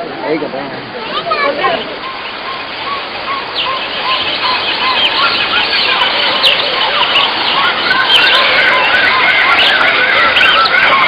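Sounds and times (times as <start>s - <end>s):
birds calling: 0.0s - 11.0s.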